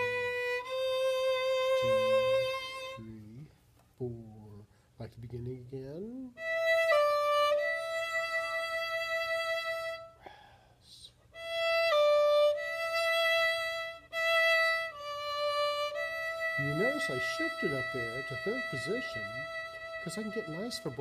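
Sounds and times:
violin playing long bowed notes: 0:00.0 - 0:03.5, 0:06.4 - 0:10.2, 0:11.4 - 0:21.0.

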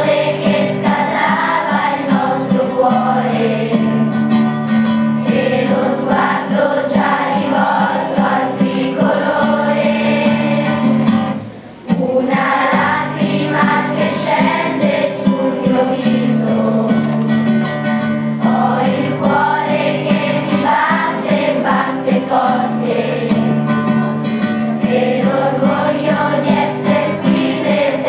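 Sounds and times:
children's choir singing: 0:00.0 - 0:28.0
musical accompaniment: 0:00.0 - 0:28.0.

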